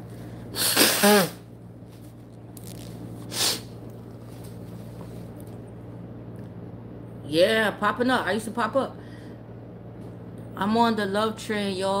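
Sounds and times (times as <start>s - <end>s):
woman sneezing: 0.5s - 1.5s.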